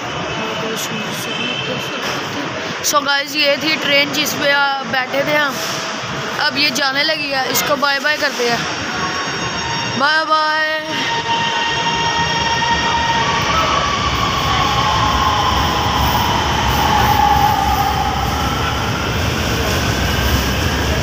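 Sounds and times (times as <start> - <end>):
train rumbling: 0.0 - 21.0.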